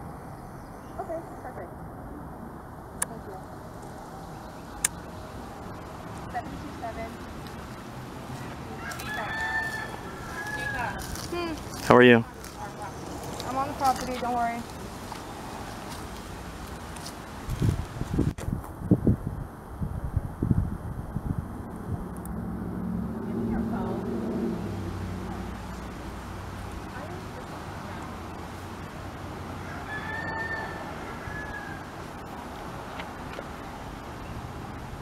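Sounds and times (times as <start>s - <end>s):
rooster crowing: 8.7s - 11.2s, 29.6s - 32.1s
vehicle engine hum: 19.4s - 35.0s.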